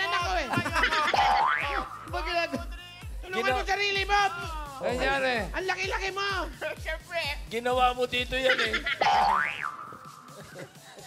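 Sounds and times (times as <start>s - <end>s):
comic boing sound effect: 9.0s - 10.0s.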